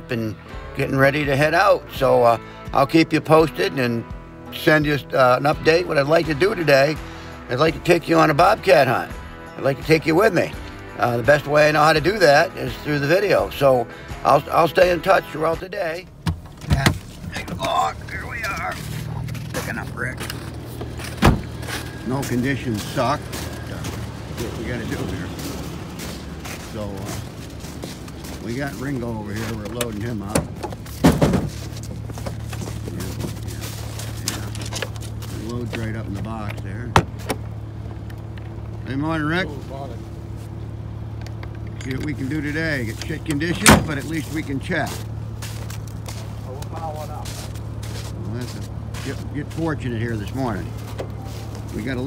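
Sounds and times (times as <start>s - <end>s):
vehicle engine idling: 1.0s - 52.0s
footsteps crunching in snow: 17.0s - 38.4s, 42.1s - 52.0s
sharp thump: 21.2s - 21.5s, 30.3s - 31.6s, 43.6s - 44.0s.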